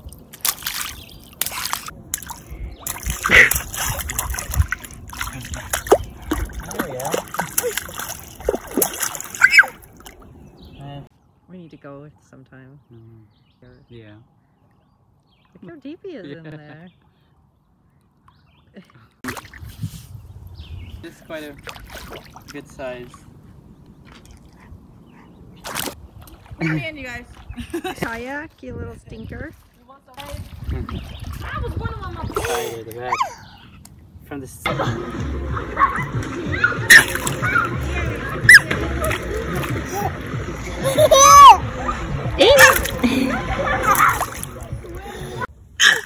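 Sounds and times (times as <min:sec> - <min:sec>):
hands splashing shallow water: 0:00.0 - 0:10.3, 0:19.2 - 0:20.1, 0:21.5 - 0:22.7, 0:25.6 - 0:26.6, 0:34.7 - 0:45.5.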